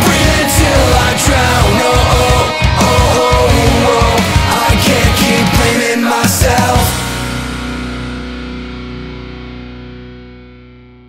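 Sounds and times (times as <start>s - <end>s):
distorted electric guitar chord ringing: 0.0s - 5.8s, 6.7s - 11.0s.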